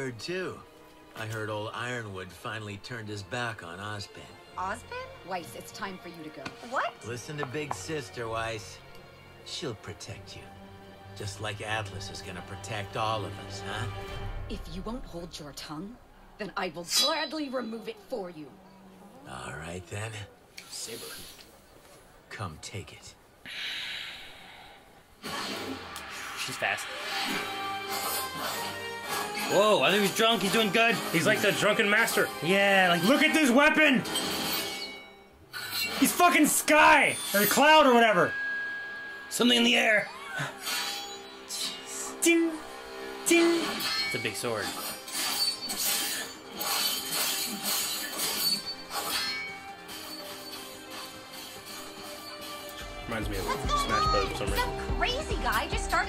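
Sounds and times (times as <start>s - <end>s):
metal sword blades clashing: 16.9s - 17.5s, 43.4s - 52.7s
breathy hiss: 20.6s - 22.2s, 23.4s - 25.4s
fight music: 26.9s - 34.9s, 51.2s - 56.0s.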